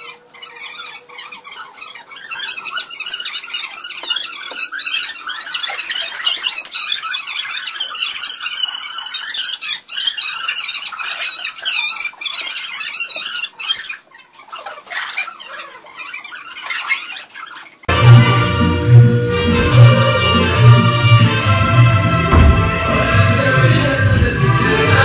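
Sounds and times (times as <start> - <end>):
high-pitched squeaks and squeals: 0.0 - 18.4.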